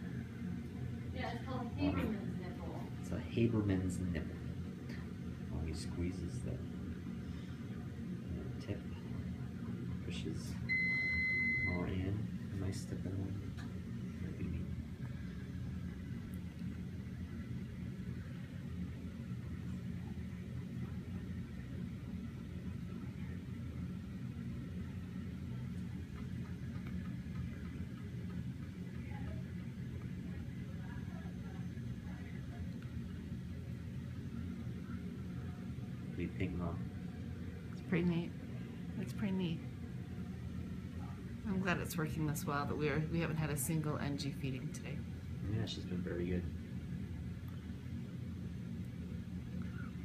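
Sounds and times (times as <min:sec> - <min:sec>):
low room hum: 0:00.0 - 0:50.0.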